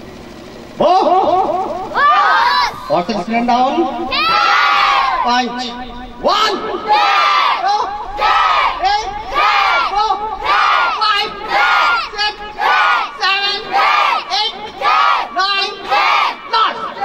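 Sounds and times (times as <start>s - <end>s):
children shouting in unison: 1.9s - 2.9s, 4.1s - 5.3s, 6.4s - 17.0s.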